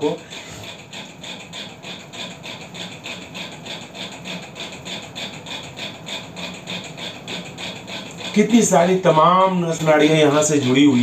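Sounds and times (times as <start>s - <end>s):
small motor humming with pulse: 0.0s - 11.0s.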